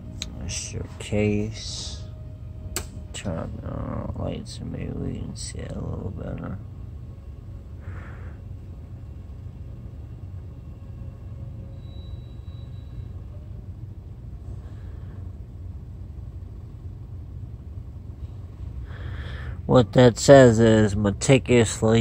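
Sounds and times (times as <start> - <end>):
steady low rumble: 0.0 - 22.0
faint short high tone: 11.5 - 13.6.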